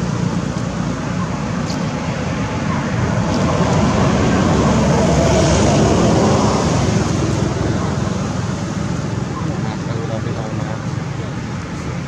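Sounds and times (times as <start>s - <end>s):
road traffic rushing: 0.0s - 12.0s
vehicle passing: 0.0s - 12.0s.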